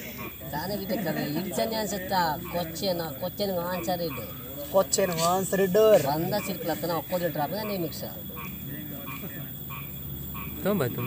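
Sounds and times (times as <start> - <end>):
frogs croaking: 0.0 - 11.0.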